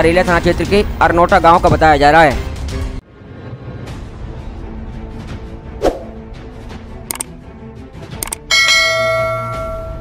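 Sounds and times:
quick clicks: 7.1 - 7.3, 8.2 - 8.4
bright bell ding: 8.5 - 10.0.

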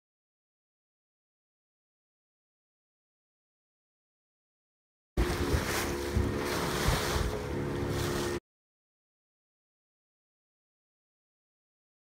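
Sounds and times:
choppy sea water hissing: 5.2 - 8.4
wind buffeting microphone: 5.2 - 8.4.

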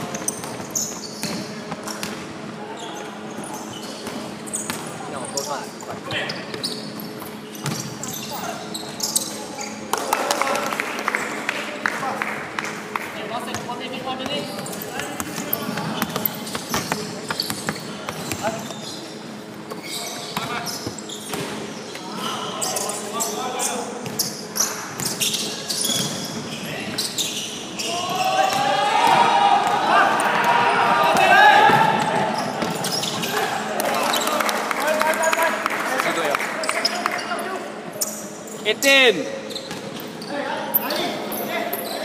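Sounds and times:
shoe squeaks on gym floor: 0.0 - 9.9, 14.3 - 28.6, 32.2 - 33.5, 36.6 - 42.0
basketball bouncing: 7.6 - 7.9
players' voices: 8.0 - 25.9, 26.5 - 39.5.

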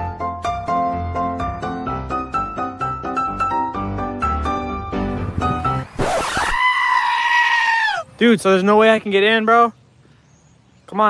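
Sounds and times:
high scream-like cry: 6.0 - 8.1.

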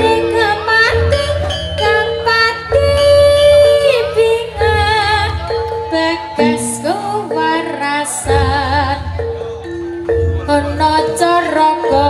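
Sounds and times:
woman singing: 0.0 - 9.4, 10.3 - 12.0
gamelan metallophones: 0.0 - 12.0
low percussion: 0.0 - 12.0.

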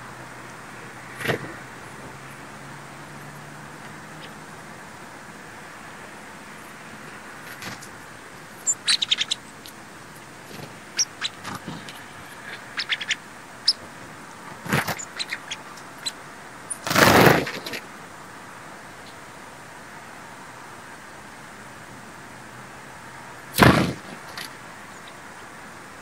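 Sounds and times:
background hiss: 0.0 - 26.0
sparrows chipping: 6.5 - 13.9, 14.5 - 17.3, 24.2 - 25.3
bird wings whirring: 7.4 - 9.6, 14.5 - 16.1, 16.7 - 17.8.

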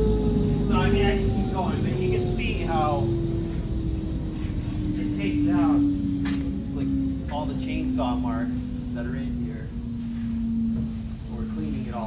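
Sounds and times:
low rumble: 0.0 - 12.0
machine motor hum: 0.0 - 12.0
people talking: 0.7 - 3.2, 4.9 - 5.9, 6.6 - 9.8, 11.2 - 12.0.

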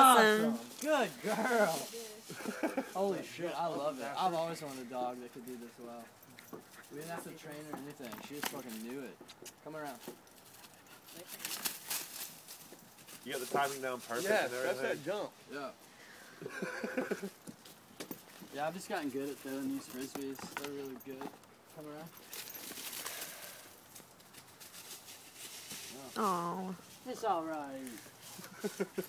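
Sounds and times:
footfalls rustling dry leaves: 0.6 - 5.6, 9.9 - 19.8, 22.2 - 29.0
footsteps crunching on dry leaves: 11.1 - 15.1, 22.3 - 29.0.

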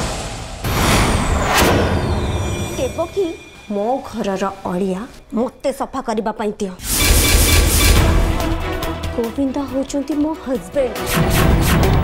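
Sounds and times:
woman speaking: 2.8 - 6.8, 9.2 - 11.0.

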